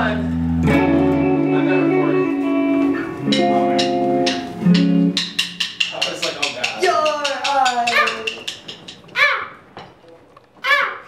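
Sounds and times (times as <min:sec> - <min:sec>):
band playing: 0:00.0 - 0:07.0.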